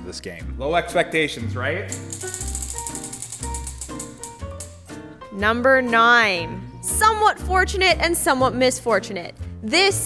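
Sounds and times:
prize wheel ticking: 1.9s - 4.8s.

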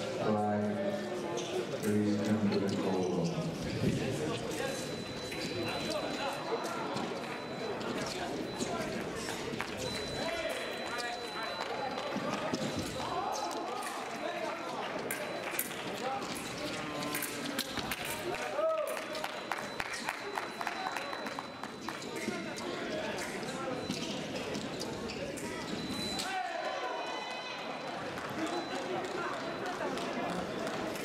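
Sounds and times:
people chattering in a hall: 0.0s - 31.0s.

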